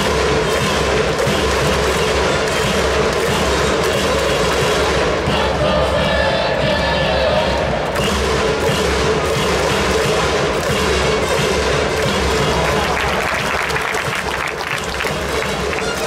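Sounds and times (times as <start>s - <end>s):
crowd cheering and chanting: 0.0s - 16.0s
drums: 0.0s - 16.0s
trumpets: 0.0s - 16.0s.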